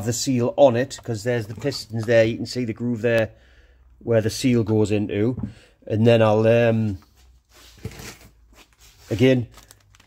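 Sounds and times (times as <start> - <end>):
rustling handling noise: 6.9 - 10.0.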